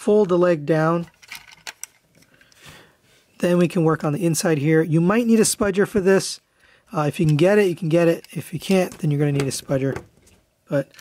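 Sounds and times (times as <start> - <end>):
plastic toy parts clicking: 1.0 - 2.4, 10.7 - 11.0.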